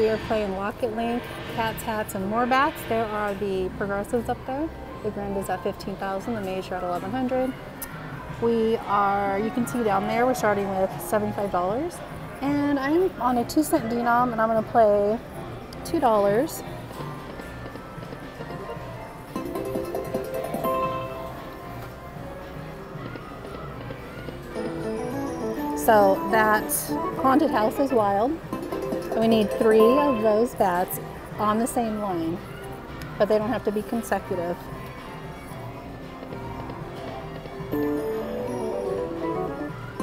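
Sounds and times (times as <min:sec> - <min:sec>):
slot machine music and effects: 0:19.3 - 0:21.5, 0:24.6 - 0:30.5, 0:37.7 - 0:40.0.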